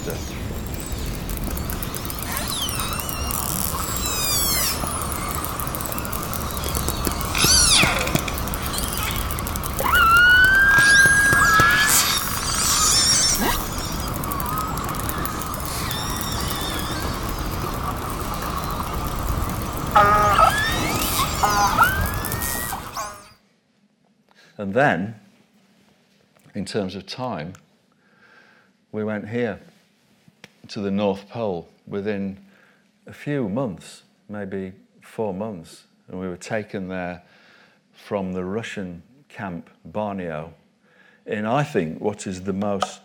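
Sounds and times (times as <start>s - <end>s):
steady hiss: 0.0s - 23.3s
underwater marine mammal calls: 2.2s - 23.3s.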